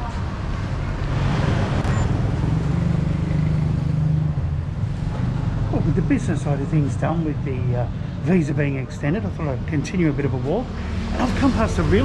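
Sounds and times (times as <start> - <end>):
street traffic: 0.0 - 12.0
vehicle engine running close by: 0.8 - 8.3.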